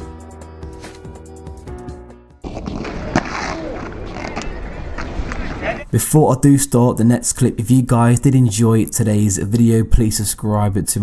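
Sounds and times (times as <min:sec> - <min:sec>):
background music: 0:00.0 - 0:03.2
outdoor ambience: 0:02.4 - 0:11.0.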